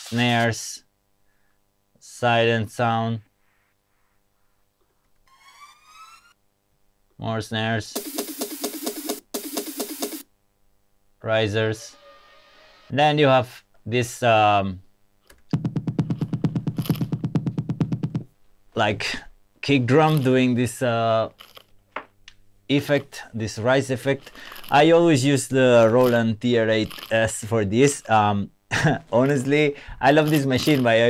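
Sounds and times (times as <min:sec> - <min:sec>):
kick drum roll: 0:15.5 - 0:18.3.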